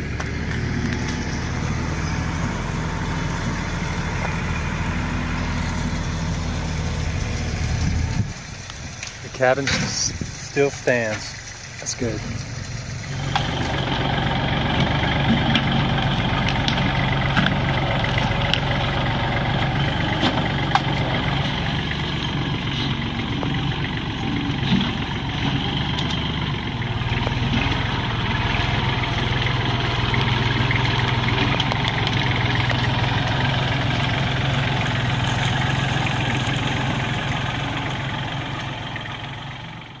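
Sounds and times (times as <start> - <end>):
tractor diesel engine running: 0.0 - 40.0.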